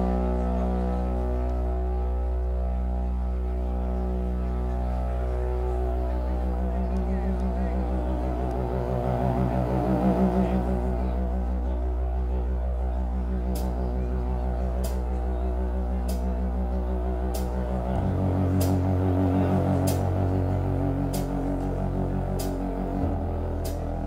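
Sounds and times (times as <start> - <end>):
pulsing synthesizer drone: 0.0 - 24.0.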